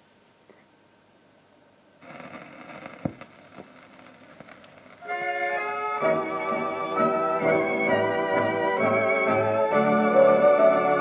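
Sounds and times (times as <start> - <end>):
record hiss and crackle: 0.0 - 11.0
sharp record clicks: 2.0 - 8.0.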